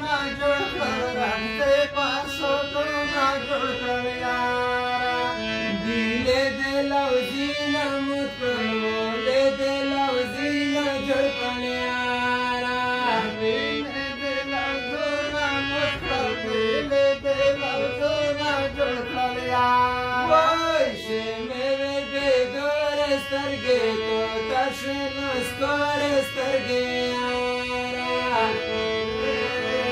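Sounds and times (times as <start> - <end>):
harmonium melody: 0.0 - 29.9.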